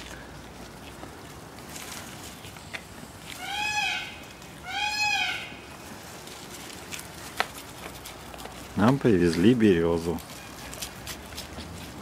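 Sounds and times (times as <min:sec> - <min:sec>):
moose calf calling: 0:03.4 - 0:05.6.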